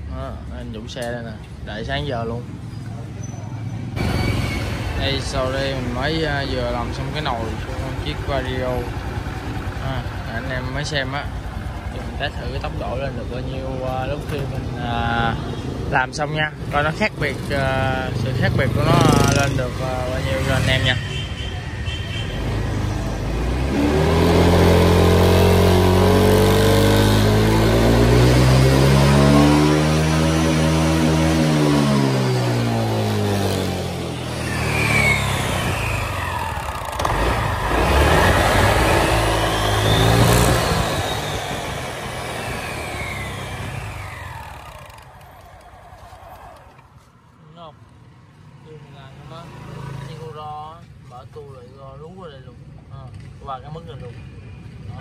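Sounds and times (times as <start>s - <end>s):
scooter engine revving: 3.7s - 46.8s
high pulley whines: 32.5s - 46.9s.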